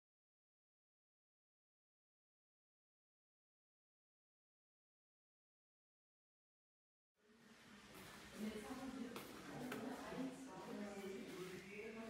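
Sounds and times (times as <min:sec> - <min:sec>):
people talking in background: 0:07.7 - 0:12.0.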